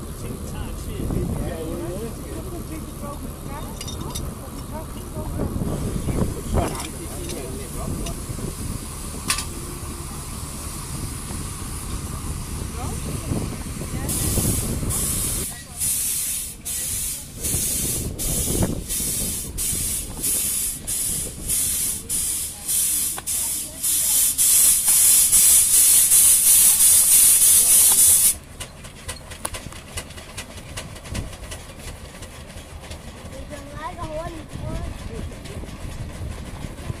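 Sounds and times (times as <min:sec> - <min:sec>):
steam roller hissing puffs: 0:09.8 - 0:28.5.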